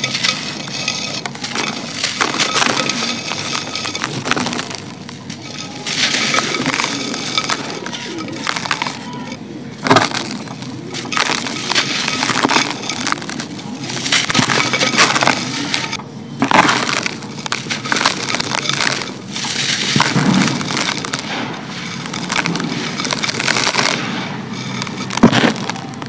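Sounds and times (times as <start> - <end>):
gritty pieces crumbling into pot: 0.0 - 26.0.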